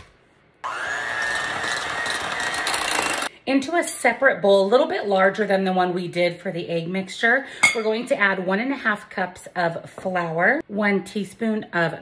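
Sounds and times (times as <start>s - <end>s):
electric hand mixer whirring: 0.6s - 3.3s.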